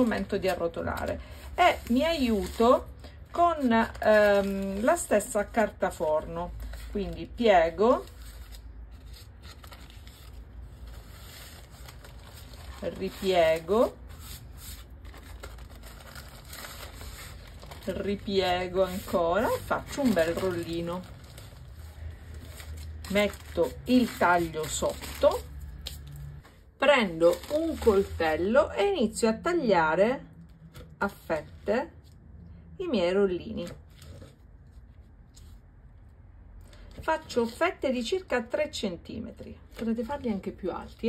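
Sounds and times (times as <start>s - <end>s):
baking paper rustling: 0.0s - 28.5s.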